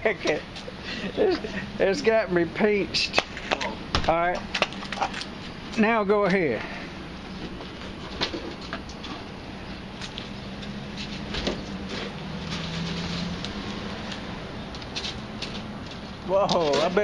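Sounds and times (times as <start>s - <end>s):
hoses dragging on ground: 10.9s - 13.8s.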